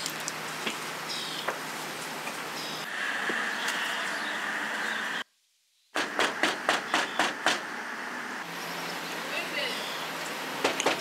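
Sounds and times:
steady background noise: 0.0 - 5.3.

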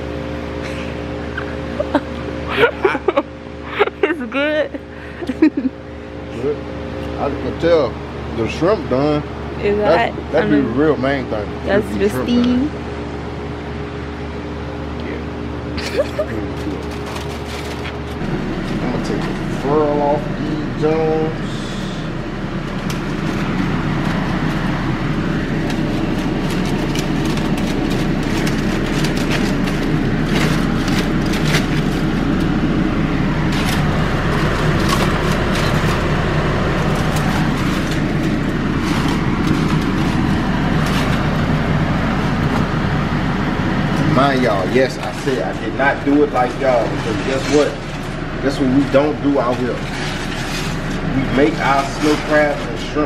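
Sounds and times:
steady hum: 0.0 - 53.0
person speaking: 9.6 - 10.9, 11.6 - 12.7
aluminium foil crinkling: 15.8 - 19.4, 22.6 - 42.4, 44.0 - 53.0.

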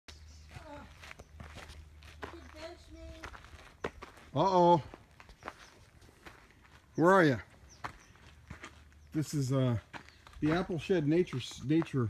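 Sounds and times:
footsteps on dirt path: 0.1 - 12.0.

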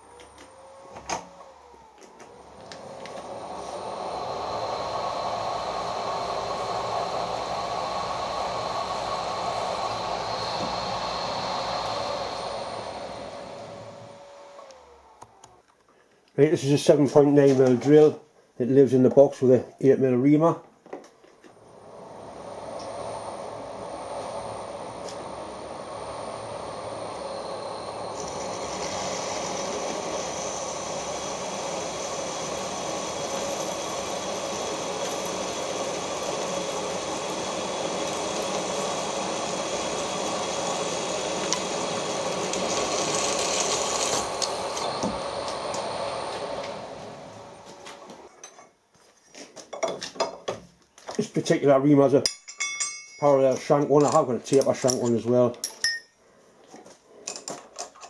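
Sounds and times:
drill cutting into metal: 0.0 - 15.1, 22.5 - 47.8.

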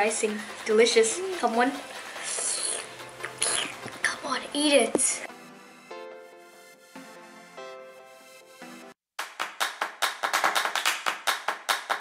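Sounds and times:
hand claps: 9.2 - 12.0.

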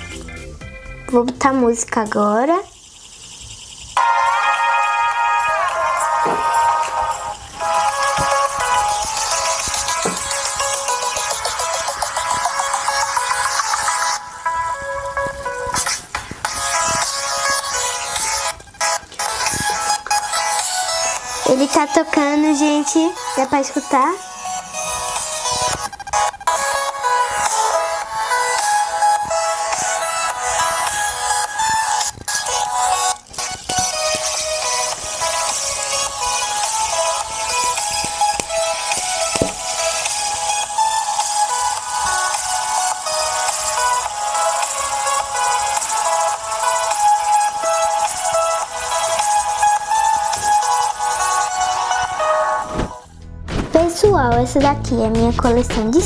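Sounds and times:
music from small speaker: 0.0 - 1.4, 2.7 - 56.0.

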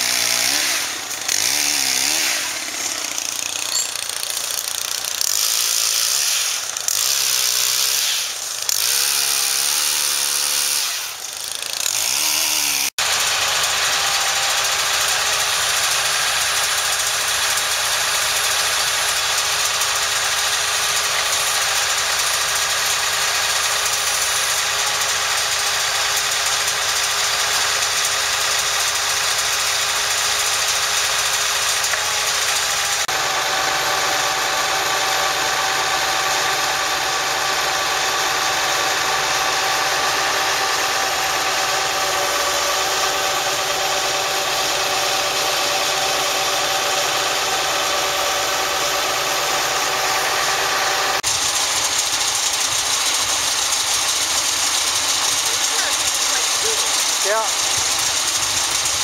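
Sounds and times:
engine idling: 0.0 - 59.0.

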